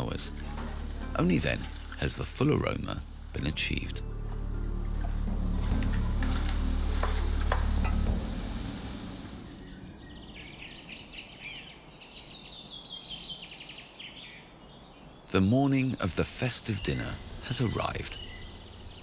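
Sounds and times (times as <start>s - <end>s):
birds chirping: 0.0s - 19.0s
low hum: 0.3s - 11.2s
shells sizzling in a pot: 5.6s - 9.6s.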